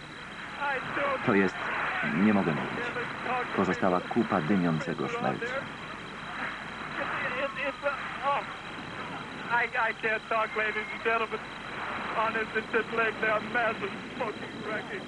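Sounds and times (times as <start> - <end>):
old recording hiss: 0.0 - 15.0
man speaking: 0.6 - 5.7.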